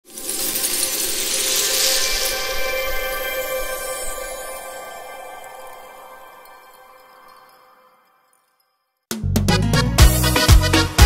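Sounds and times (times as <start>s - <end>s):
tiny glassy pieces clinking: 0.1s - 2.5s.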